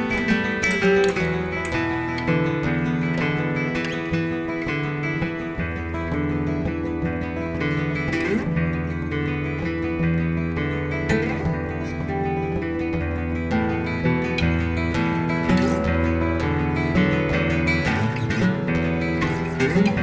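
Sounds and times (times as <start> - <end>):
acoustic guitars plucking melody: 0.0 - 20.0.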